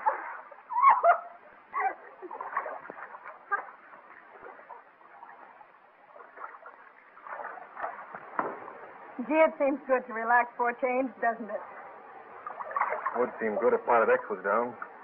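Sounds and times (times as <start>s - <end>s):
film soundtrack hiss: 0.0s - 15.0s
water splashing in pool: 0.0s - 15.0s.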